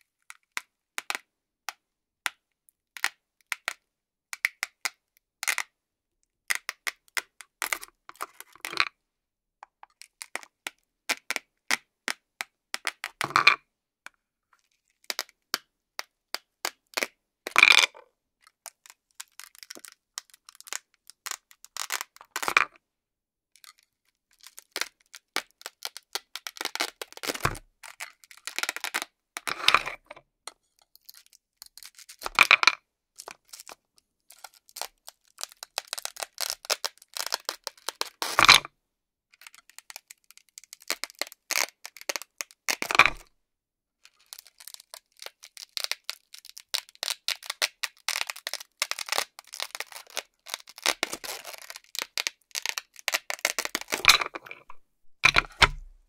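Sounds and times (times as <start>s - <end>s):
velcro ripping apart: 44.3s - 54.1s
piece knocking on board: 55.0s - 56.0s.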